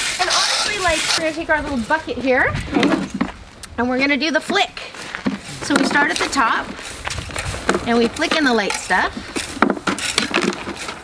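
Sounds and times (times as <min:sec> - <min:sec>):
rake scraping ground: 0:00.0 - 0:03.4, 0:04.0 - 0:11.0.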